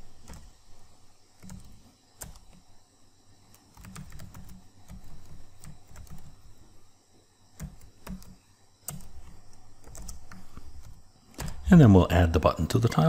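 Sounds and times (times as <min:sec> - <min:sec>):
keyboard typing: 0:00.0 - 0:00.6, 0:01.3 - 0:02.7, 0:03.5 - 0:06.6, 0:07.5 - 0:11.7.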